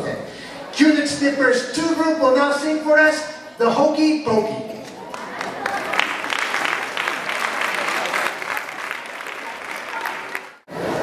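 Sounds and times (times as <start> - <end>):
audience applauding: 4.8 - 11.0.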